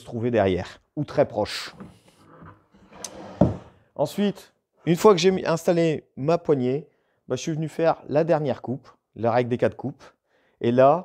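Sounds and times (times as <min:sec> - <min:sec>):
wooden sled sliding on table: 0:01.7 - 0:03.8
heavy wooden knock: 0:03.3 - 0:03.7.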